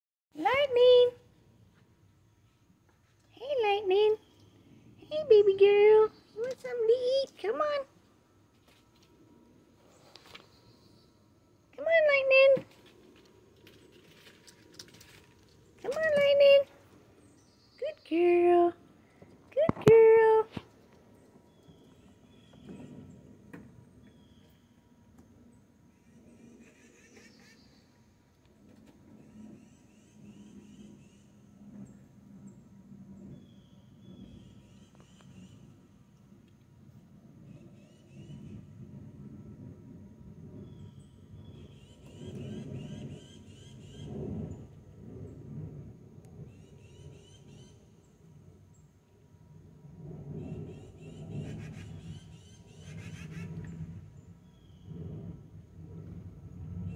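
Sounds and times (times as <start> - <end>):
low uneven rumble: 0.4 - 56.9.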